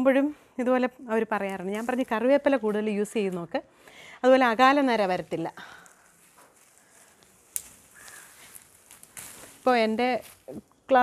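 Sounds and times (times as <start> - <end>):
rustling of shrub branches: 1.4 - 3.3, 4.4 - 11.0.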